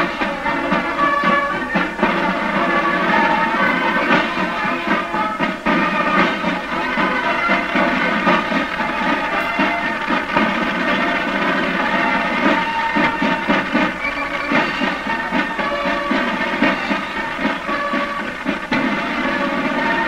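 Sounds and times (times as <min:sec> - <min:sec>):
brass chords: 0:00.0 - 0:20.0
marching drum beat: 0:00.0 - 0:20.0.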